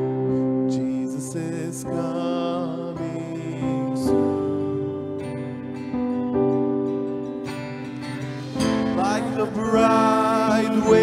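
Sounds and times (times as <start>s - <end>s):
man singing: 0.0s - 5.6s, 8.5s - 11.0s
acoustic guitar strumming: 0.0s - 11.0s.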